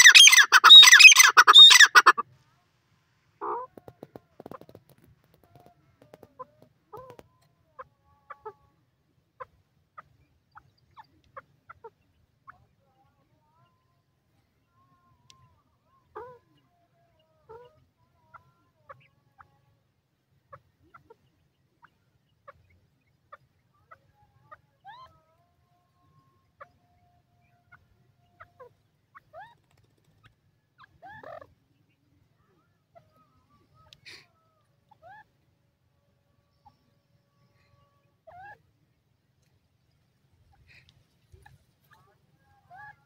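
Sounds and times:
bird chirping calls: 0.0 - 2.2.

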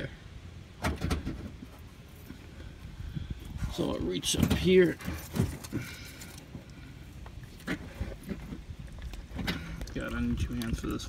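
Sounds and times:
handling clicks and rustles: 3.7 - 11.0.

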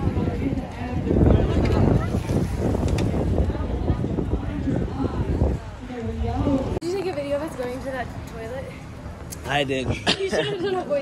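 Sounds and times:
wind buffeting microphone: 0.0 - 10.2
faint voices of people: 0.0 - 11.0.

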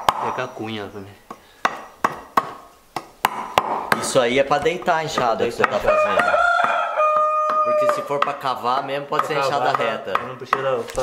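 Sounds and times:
machete chopping wood: 0.0 - 0.4, 1.6 - 4.2.

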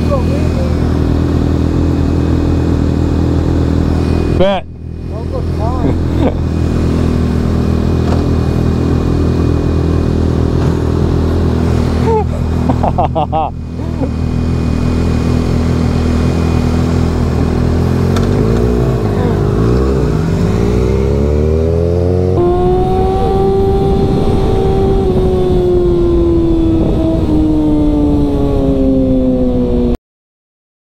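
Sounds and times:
motorcycle pulling away: 5.6 - 29.9.

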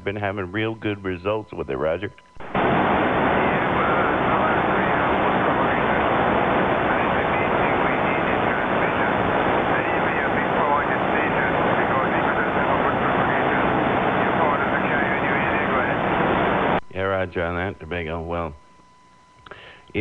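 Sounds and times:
radio static and hiss: 0.0 - 20.0
faint distant radio voice: 3.1 - 18.6.

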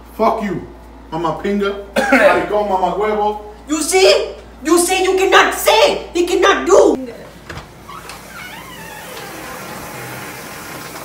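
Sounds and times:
running water in bathroom: 7.9 - 11.0.

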